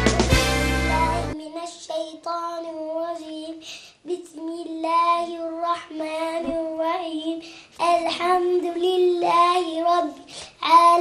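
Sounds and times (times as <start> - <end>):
girl chanting: 0.9 - 11.0
girl breathing: 3.6 - 4.1, 7.3 - 7.8, 10.2 - 10.7.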